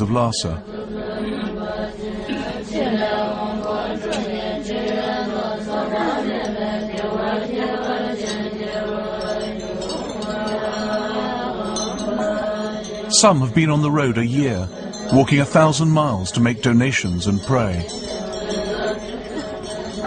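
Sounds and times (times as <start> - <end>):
group chanting prayers: 0.0 - 20.0
steady low tone: 11.6 - 20.0.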